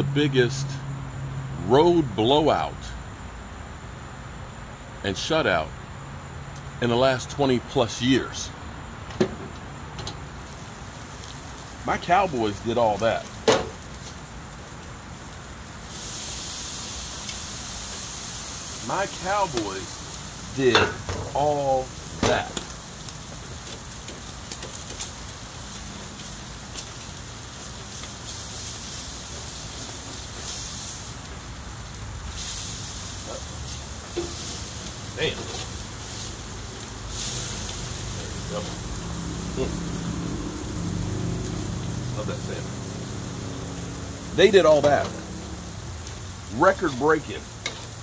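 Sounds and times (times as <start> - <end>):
meat sizzling on a grill: 3.3 - 48.0.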